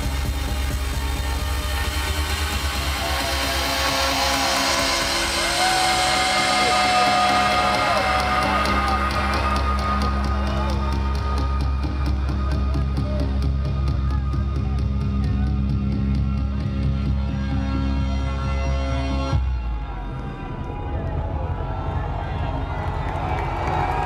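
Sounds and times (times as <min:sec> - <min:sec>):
loud trance dance music: 0:00.0 - 0:24.0.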